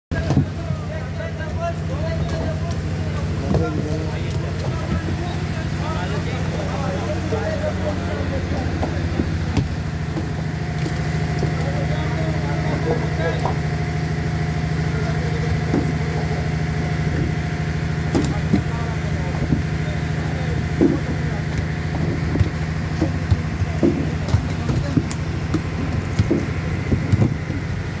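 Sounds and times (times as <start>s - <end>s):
refrigerated truck droning: 0.1s - 28.0s
sharp knocks: 21.9s - 27.6s.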